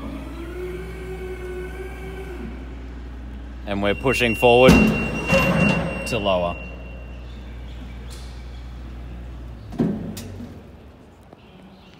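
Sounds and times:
hydraulic hum: 0.0s - 10.9s
metal clunk: 4.6s - 6.2s.

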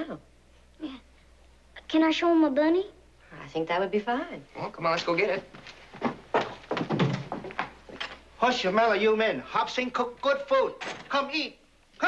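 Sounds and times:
footsteps on wooden floor: 5.5s - 8.3s.

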